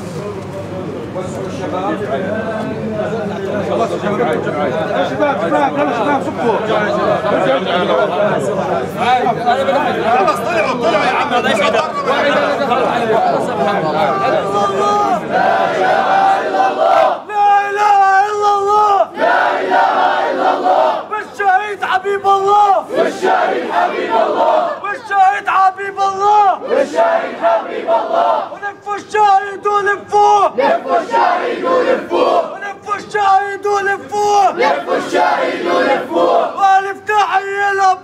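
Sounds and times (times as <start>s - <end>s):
crowd of men chanting: 10.0s - 28.8s, 29.9s - 32.6s, 34.2s - 37.0s.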